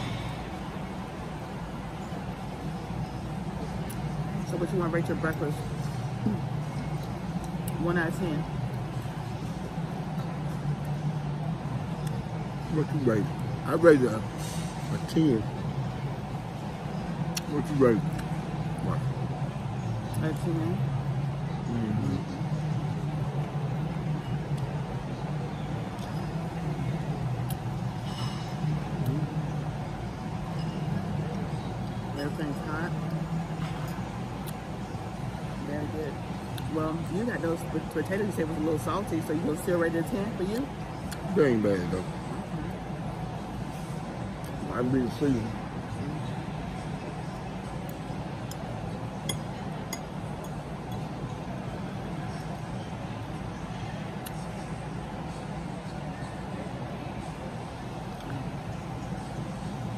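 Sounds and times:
distant murmur of voices: 0.0s - 59.9s
low background hum: 0.0s - 59.9s.

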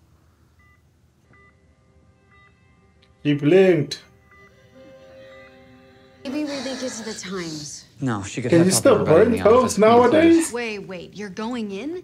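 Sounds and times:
patient monitor beeps: 0.5s - 7.1s.

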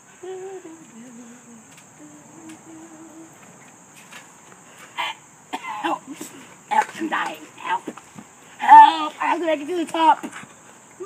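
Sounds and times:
high insect buzz: 0.0s - 11.0s
child humming: 0.1s - 3.4s
person shouting: 8.6s - 9.4s.

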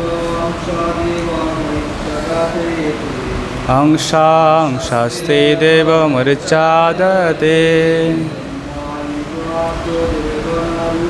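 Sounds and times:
group chanting call-and-response: 0.0s - 11.0s.

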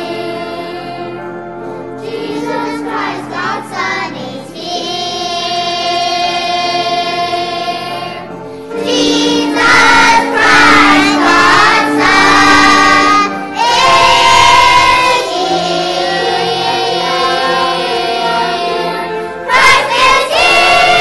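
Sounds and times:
children's choir singing: 0.0s - 21.0s.

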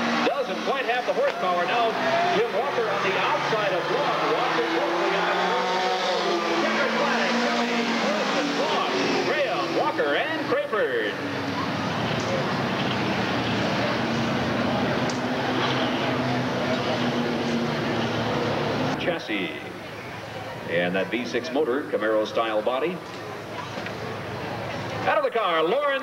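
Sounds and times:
race car engines droning: 0.0s - 26.0s.

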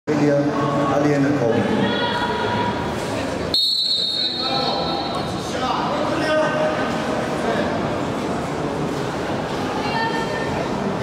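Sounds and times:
voices and crowd noise in hall: 0.1s - 11.0s
referee's whistle blast: 3.6s - 5.2s.

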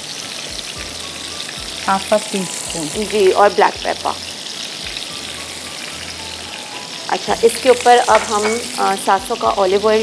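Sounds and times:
chicken sizzling in a frying pan: 0.0s - 10.0s.

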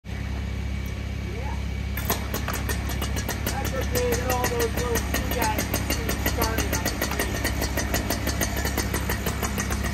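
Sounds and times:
chainsaw engine idling: 0.1s - 9.9s.

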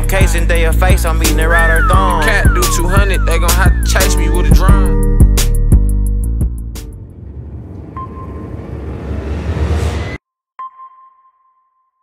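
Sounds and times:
rising whoosh: 1.4s - 10.2s.

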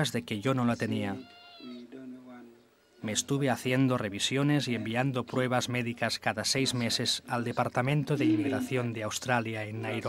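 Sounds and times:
dubbed translation voice: 0.0s - 10.0s
faint man speaking: 0.0s - 10.0s.

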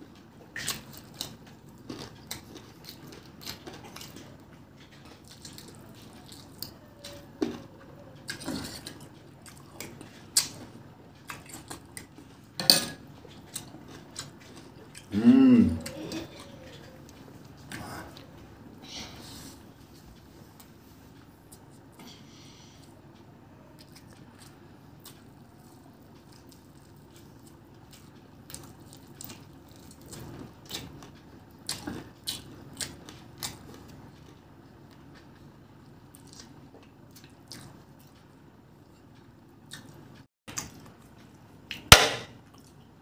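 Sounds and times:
chewing and biting: 0.5s - 7.6s, 13.2s - 15.1s, 23.8s - 42.9s
person humming: 15.1s - 16.6s.

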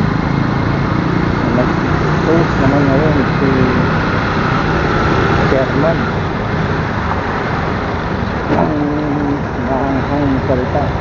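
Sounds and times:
motorcycle engine running: 0.0s - 11.0s
road traffic noise: 0.0s - 11.0s
indistinct voice: 8.5s - 11.0s.

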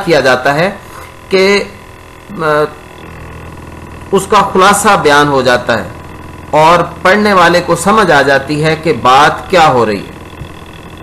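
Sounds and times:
man speaking: 0.0s - 2.8s, 4.1s - 10.2s
electrical mains hum: 0.0s - 11.0s.

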